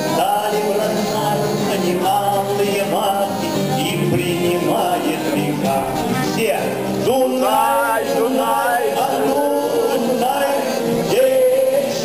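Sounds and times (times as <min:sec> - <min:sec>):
accordion: 0:00.0 - 0:12.0
acoustic guitars: 0:00.0 - 0:12.0
man singing into microphone: 0:00.0 - 0:12.0.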